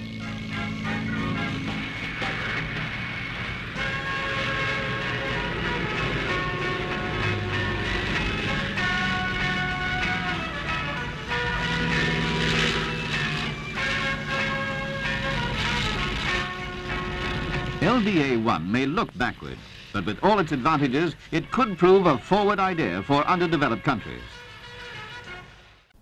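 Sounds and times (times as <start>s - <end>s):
background music of held notes: 0.0s - 19.0s, 19.7s - 25.7s
propeller aircraft flying past: 0.0s - 25.6s.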